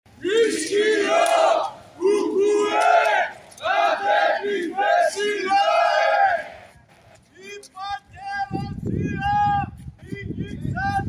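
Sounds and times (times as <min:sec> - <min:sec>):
crowd chanting: 0:00.1 - 0:06.8.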